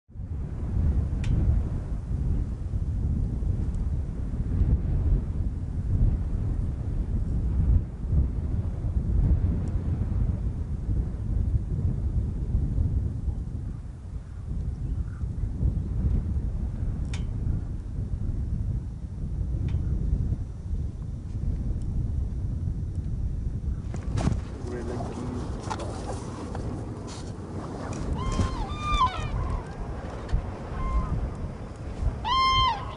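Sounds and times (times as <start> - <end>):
wind buffeting microphone: 0.1 - 32.9.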